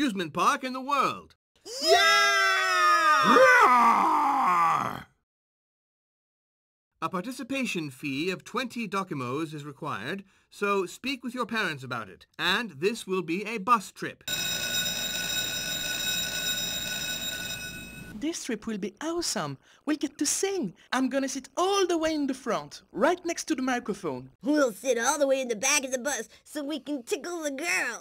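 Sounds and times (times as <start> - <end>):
cartoon children cheering: 1.7 - 5.0
electric school bell ringing: 14.3 - 18.2.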